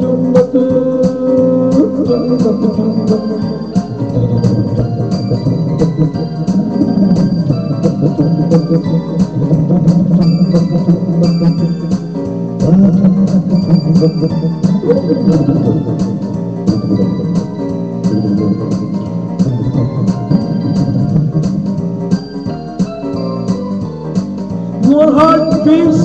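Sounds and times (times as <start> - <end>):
drum machine beat: 0.0 - 26.0
electronic organ chords: 0.0 - 26.0.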